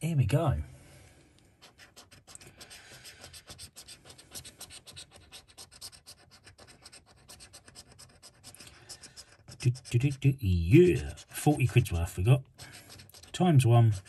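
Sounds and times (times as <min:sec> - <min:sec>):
coin scraping a scratchcard: 0:01.6 - 0:14.0.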